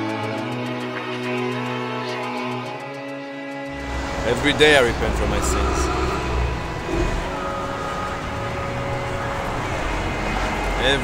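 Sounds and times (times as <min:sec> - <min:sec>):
low rumble: 0:03.7 - 0:10.1.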